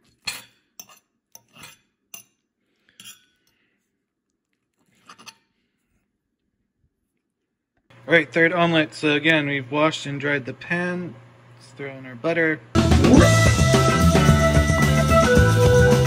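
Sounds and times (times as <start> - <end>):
fork clinking on a plate: 0.1 - 3.6.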